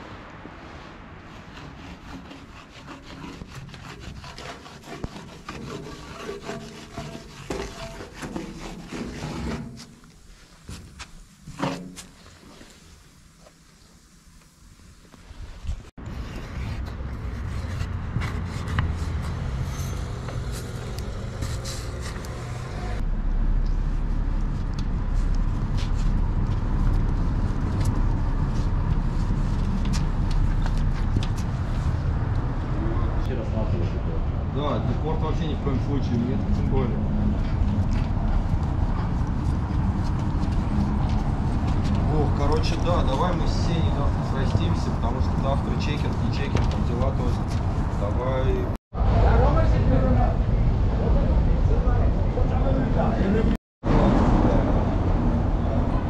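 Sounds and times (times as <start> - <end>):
low street rumble: 0.0 - 56.0
paint marker scraping and squeaking: 1.5 - 10.8.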